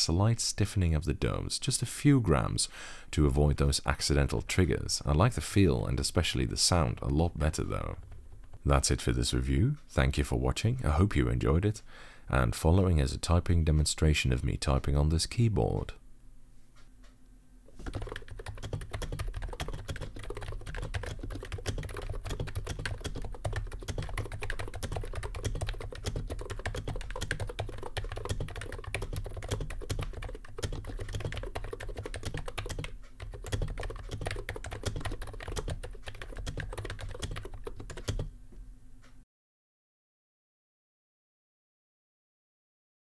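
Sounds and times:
fast typing on a keyboard: 0:17.8 - 0:38.3.

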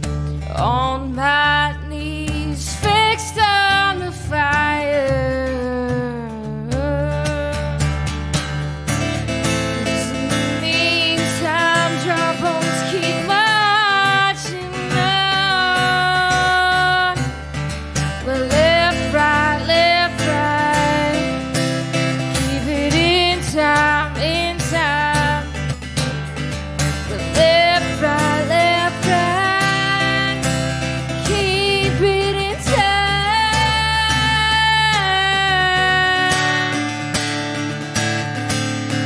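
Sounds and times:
strummed acoustic guitar: 0:00.0 - 0:39.0
woman singing: 0:00.4 - 0:08.3, 0:08.9 - 0:26.2, 0:26.9 - 0:37.7.

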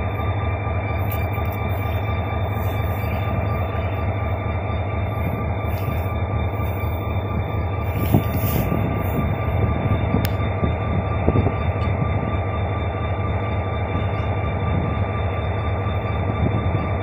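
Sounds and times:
diesel locomotive engine rumble: 0:00.0 - 0:17.0
high whine: 0:00.0 - 0:17.0.

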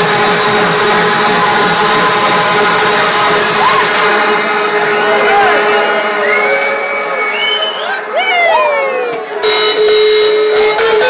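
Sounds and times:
distorted trance music: 0:00.0 - 0:08.2
crowd cheering and whistling: 0:00.0 - 0:11.0.

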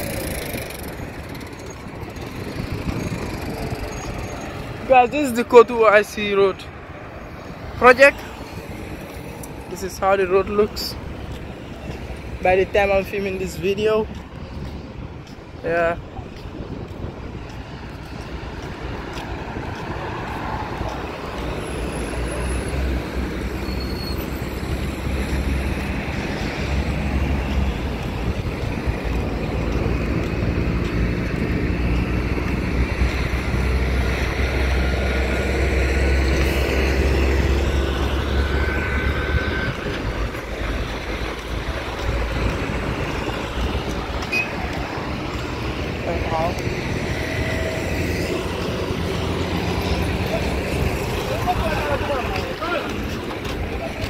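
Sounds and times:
cars passing: 0:00.0 - 0:54.0
engine and tyre rumble: 0:00.0 - 0:54.0.

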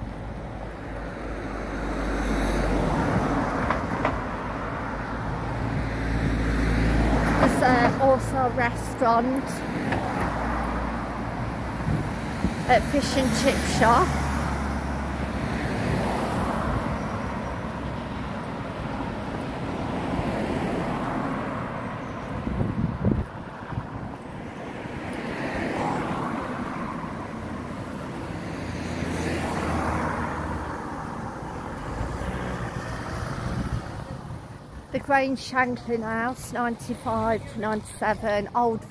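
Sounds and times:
cars driving past: 0:00.0 - 0:38.9.

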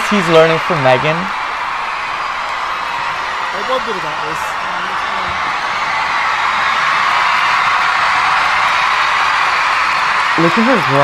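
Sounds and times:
large audience cheering and screaming: 0:00.0 - 0:11.0.

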